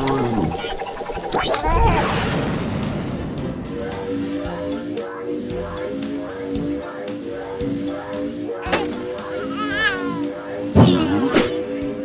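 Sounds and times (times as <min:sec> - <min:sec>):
cartoon background music: 0:00.0 - 0:12.0
high-pitched wavering vocal: 0:00.0 - 0:12.0
sudden loud burst: 0:01.7 - 0:03.8.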